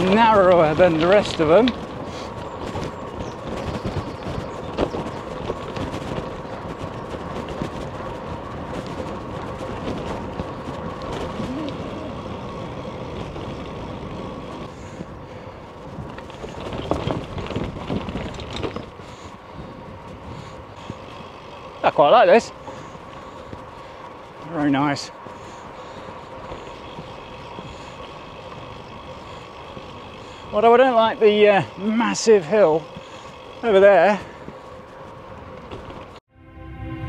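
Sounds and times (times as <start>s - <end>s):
bike tyres rolling on tarmac: 0.0s - 36.2s.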